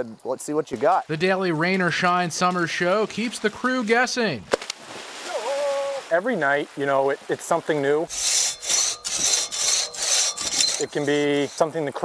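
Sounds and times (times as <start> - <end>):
saw cutting through log: 8.1 - 12.0.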